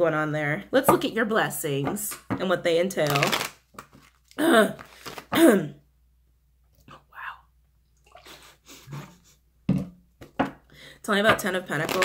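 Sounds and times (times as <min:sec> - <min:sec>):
woman clearing her throat: 0:05.3 - 0:05.8.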